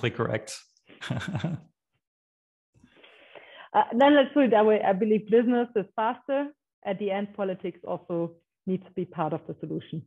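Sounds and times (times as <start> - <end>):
man laughing: 1.0 - 1.7.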